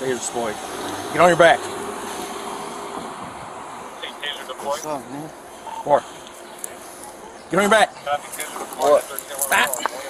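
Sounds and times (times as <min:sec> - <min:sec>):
wind noise on microphone: 0:02.9 - 0:03.6.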